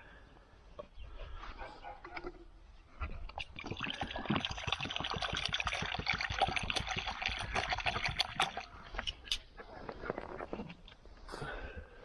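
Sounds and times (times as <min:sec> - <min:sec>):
water pouring into plastic bowl: 0:03.4 - 0:09.3.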